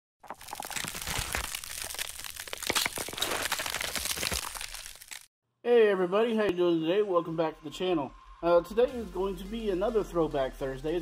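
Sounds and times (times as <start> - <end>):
dense crackling and crunching: 0.2 - 5.3
man talking: 5.6 - 11.0.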